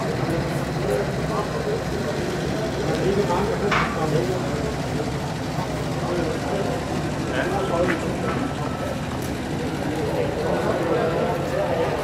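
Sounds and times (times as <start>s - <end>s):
jeep engine idling: 0.0s - 12.0s
people talking: 0.0s - 12.0s.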